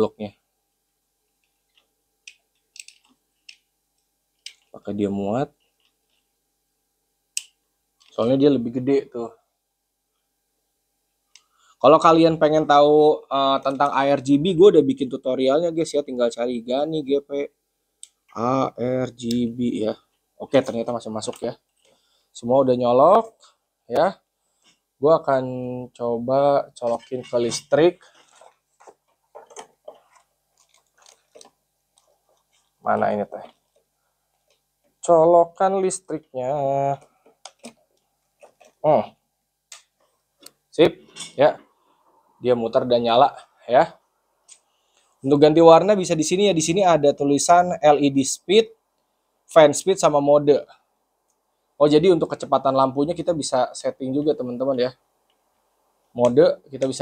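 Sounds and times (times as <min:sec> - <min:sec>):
cables and small parts handled: 0:00.7 - 0:04.8, 0:05.6 - 0:06.4, 0:20.0 - 0:22.1, 0:26.8 - 0:35.1, 0:36.1 - 0:38.9, 0:44.4 - 0:45.2.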